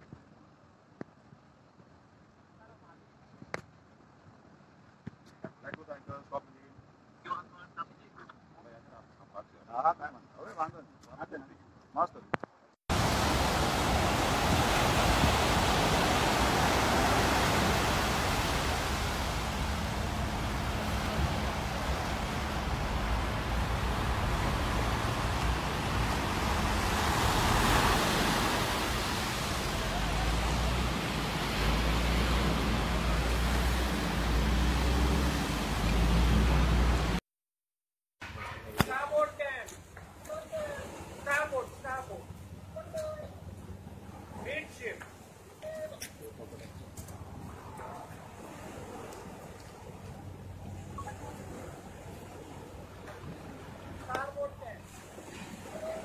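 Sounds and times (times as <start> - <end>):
voices: 5.5 - 12.2, 38.4 - 48.2
surf washing in: 12.9 - 37.2, 40.2 - 56.0.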